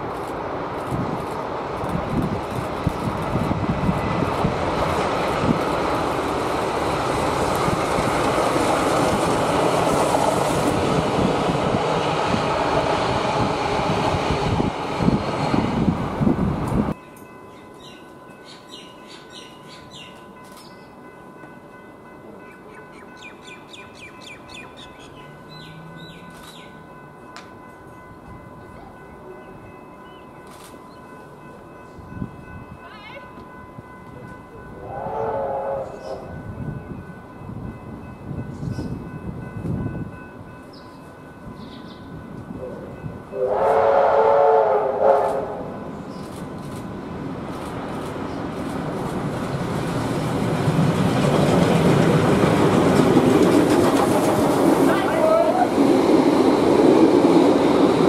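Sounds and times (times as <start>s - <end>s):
steam locomotive running: 0.0s - 58.0s
birds chirping: 22.6s - 26.8s, 40.7s - 42.1s.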